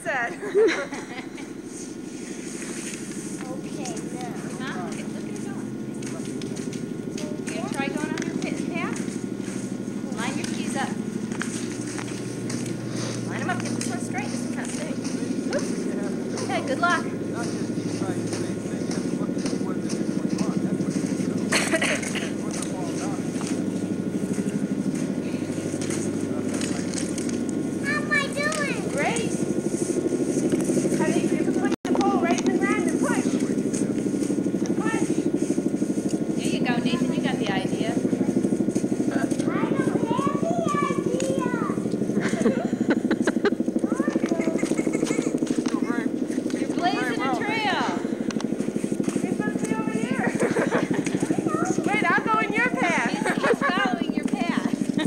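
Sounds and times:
children calling and chattering: 0:00.0 - 0:55.0
steady low drone: 0:00.0 - 0:55.0.

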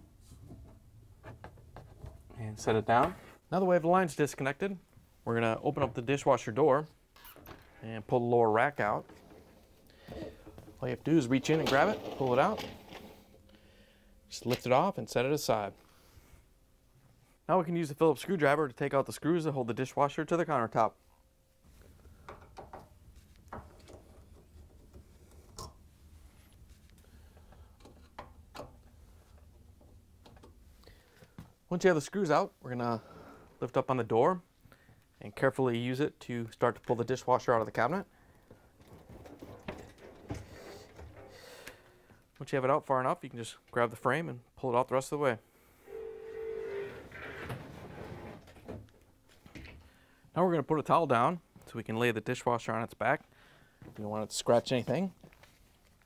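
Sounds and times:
metal frame scraping over floor: 0:11.2 - 0:13.4.

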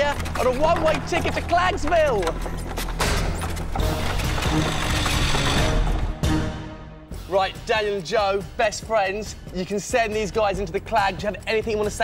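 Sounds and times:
mechanical rattling effect: 0:02.9 - 0:05.8.

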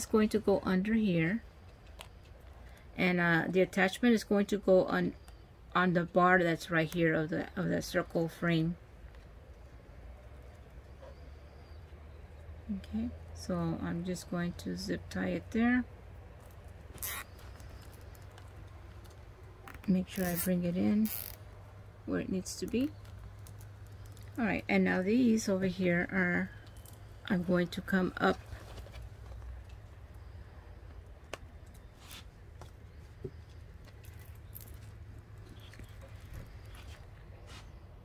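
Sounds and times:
low steady hum: 0:00.0 - 0:38.0
zip tie rustling through fabric: 0:16.5 - 0:21.4, 0:31.8 - 0:37.7.

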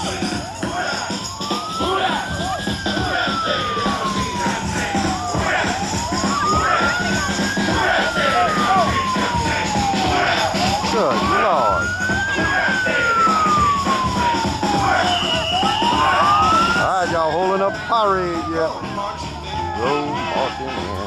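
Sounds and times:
crowd chatter: 0:00.0 - 0:21.0
siren wailing: 0:00.0 - 0:21.0.

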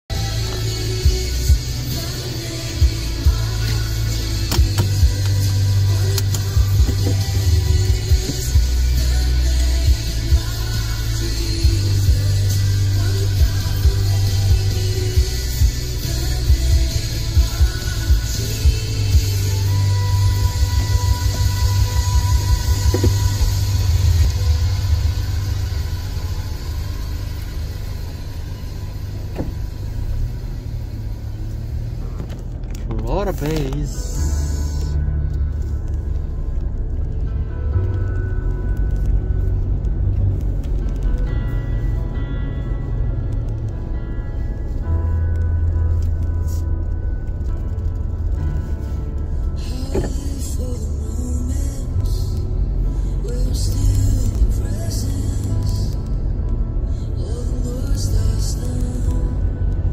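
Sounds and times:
bass-heavy music through car stereo: 0:00.0 - 0:59.9.

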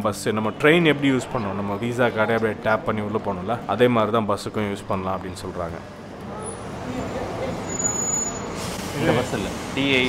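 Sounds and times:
bus engine and tyre noise: 0:04.9 - 0:10.0.

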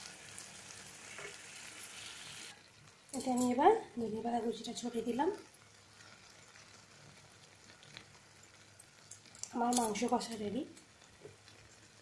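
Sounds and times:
curry sizzling faintly: 0:00.0 - 0:12.0.

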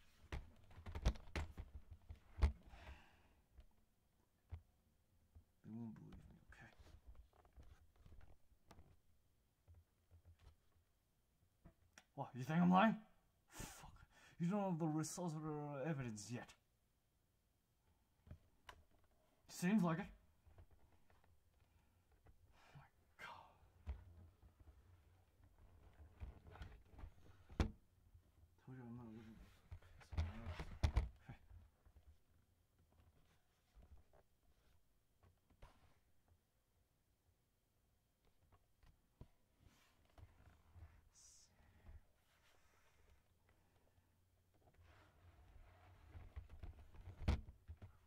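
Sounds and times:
knocks and clicks on laptop body: 0:00.1 - 0:02.8, 0:25.8 - 0:27.8, 0:29.7 - 0:31.2, 0:46.1 - 0:48.0
person whispering: 0:22.7 - 0:23.8, 0:41.1 - 0:41.6.

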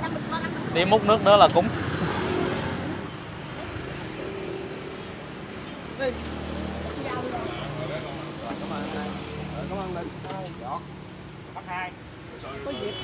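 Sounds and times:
street traffic hum: 0:00.0 - 0:13.0.

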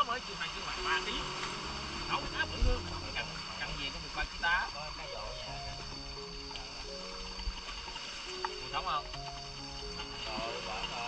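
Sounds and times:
people's voices: 0:00.0 - 0:05.6
faint steady hum: 0:00.0 - 0:11.0.

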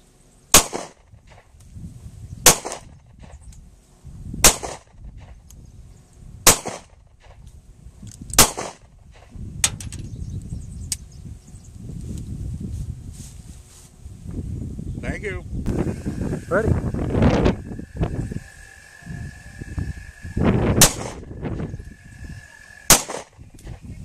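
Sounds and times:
pistol shots: 0:00.5 - 0:01.4, 0:02.5 - 0:02.9, 0:04.4 - 0:04.9, 0:06.5 - 0:06.9, 0:08.4 - 0:08.9, 0:20.8 - 0:21.3, 0:22.9 - 0:23.4.

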